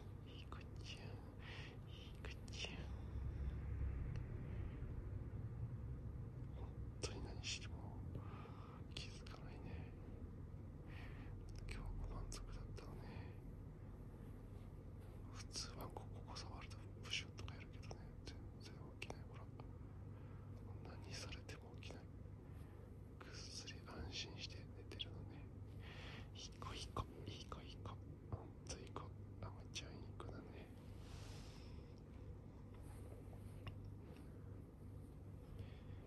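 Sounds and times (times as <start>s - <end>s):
person whispering: 0.0s - 4.3s, 6.4s - 10.2s, 10.9s - 13.5s, 15.0s - 19.8s, 20.5s - 22.2s, 23.2s - 25.6s, 26.2s - 32.0s, 32.7s - 34.5s
low steady hum: 0.0s - 36.0s.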